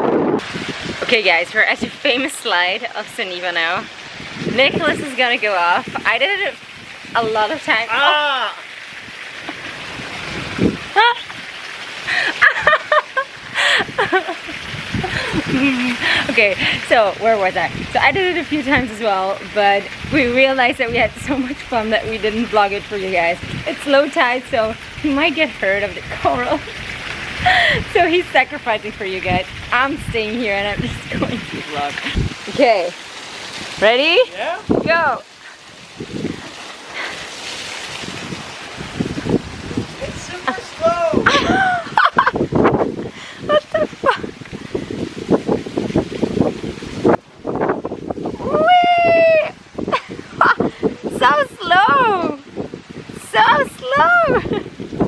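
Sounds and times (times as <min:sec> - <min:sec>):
water rushing down a slide: 0:00.0 - 0:55.0
wind buffeting microphone: 0:00.0 - 0:55.0
woman and man laughing: 0:12.1 - 0:16.3, 0:40.4 - 0:42.6, 0:43.2 - 0:44.3, 0:54.2 - 0:54.7.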